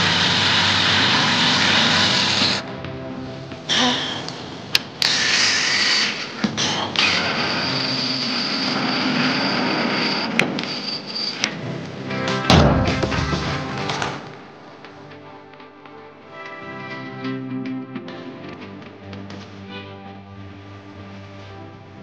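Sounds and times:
cordless drill motor whining: 0.0 - 2.6, 5.0 - 11.5
background music: 0.0 - 10.4, 11.4 - 22.0.

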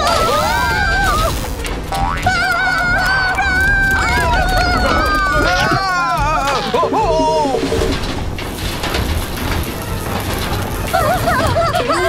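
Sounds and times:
power line crackling and buzzing: 0.0 - 12.0.

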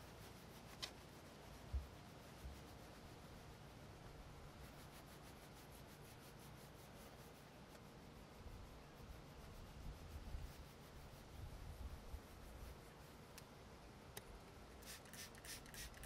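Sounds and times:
cloth scrubbing a metal panel: 0.0 - 3.4, 4.5 - 13.3.

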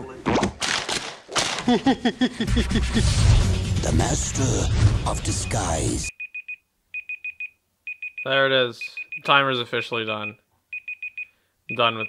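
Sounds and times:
timer alarm beeping: 5.2 - 12.0.

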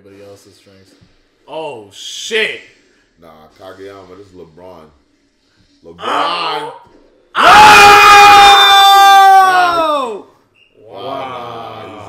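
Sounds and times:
man screaming high-pitched: 6.0 - 6.8, 7.4 - 10.2.

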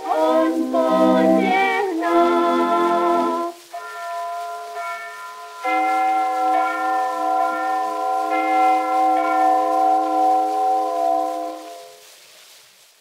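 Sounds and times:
held chord on old record: 0.0 - 12.2
record surface hiss: 0.0 - 13.0.

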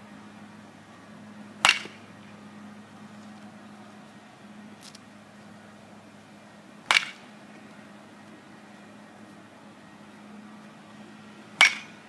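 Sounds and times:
baseball bat striking ball: 1.6 - 2.0, 6.8 - 7.3, 11.6 - 12.0.

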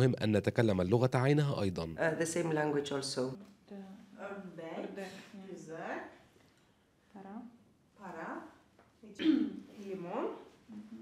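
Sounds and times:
woman speaking slowly: 7.1 - 11.0.

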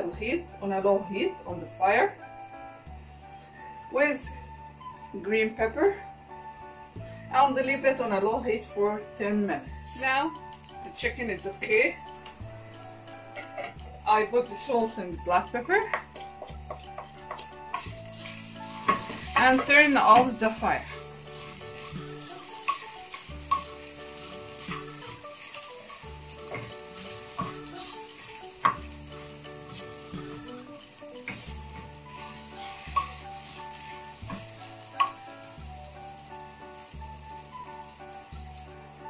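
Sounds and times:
background music: 0.0 - 39.0
food sizzling in a frying pan: 0.0 - 39.0
spatula tapping against pan: 15.8 - 17.9.

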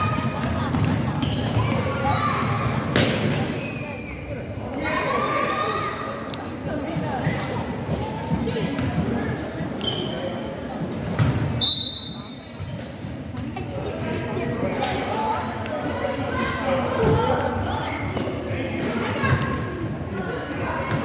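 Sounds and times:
echoing voices in hall: 0.0 - 11.6, 12.2 - 21.0.

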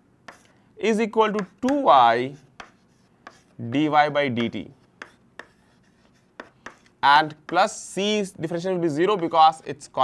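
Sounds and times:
chalk tapping and scraping on chalkboard: 0.2 - 0.6, 1.2 - 8.0, 9.0 - 9.6.

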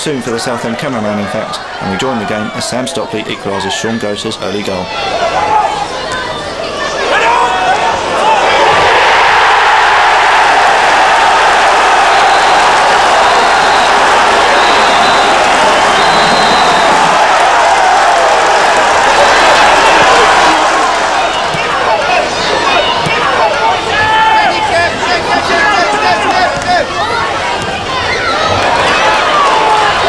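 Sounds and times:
football crowd roaring: 0.1 - 30.0.

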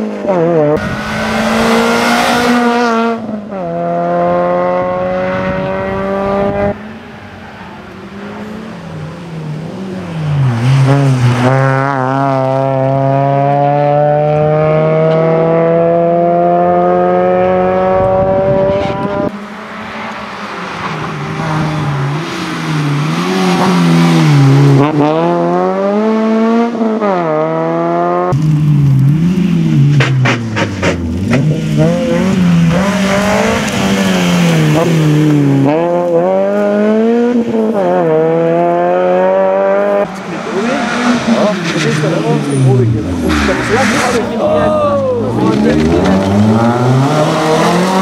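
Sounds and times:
rally car engine revving: 0.0 - 48.0.

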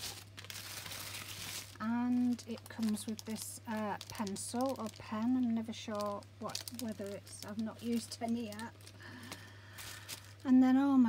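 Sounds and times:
tissue paper rustling: 0.0 - 10.4.

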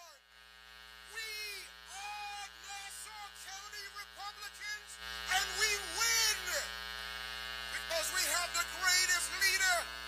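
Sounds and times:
electrical buzz from sound system: 0.0 - 10.0.

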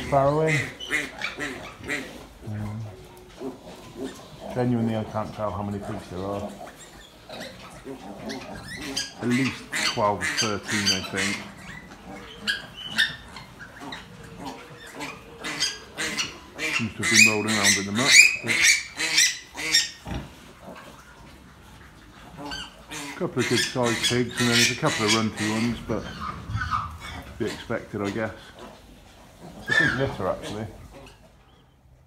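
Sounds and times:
piglets squeaking: 0.0 - 31.8.

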